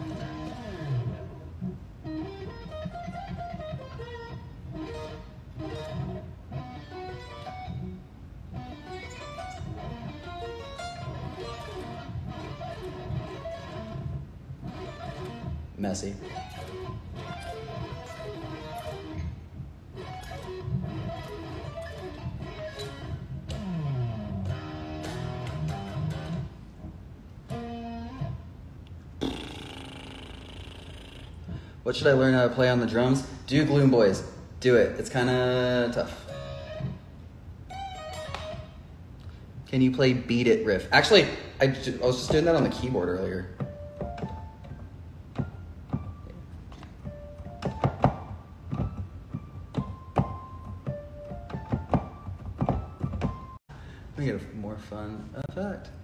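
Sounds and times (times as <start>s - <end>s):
electric guitar picked melody: 0.0s - 28.7s, 35.4s - 39.4s, 42.1s - 53.6s.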